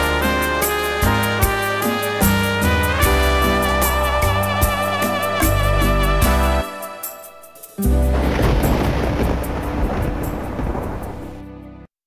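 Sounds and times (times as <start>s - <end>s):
deep rolling thunder: 7.9s - 11.5s.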